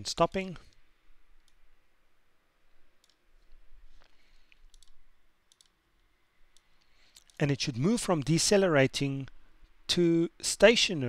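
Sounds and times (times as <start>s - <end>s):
computer mouse clicks: 3.0s - 3.6s, 4.5s - 7.4s.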